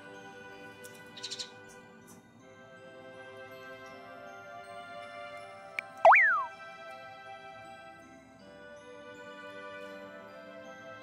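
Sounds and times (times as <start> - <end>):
soft background music: 0.0 - 11.0
cartoon swoop sound effect: 5.8 - 6.5.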